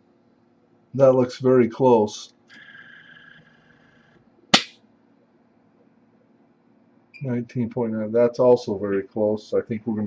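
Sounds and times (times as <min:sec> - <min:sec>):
sharp click: 0:04.6 - 0:04.8.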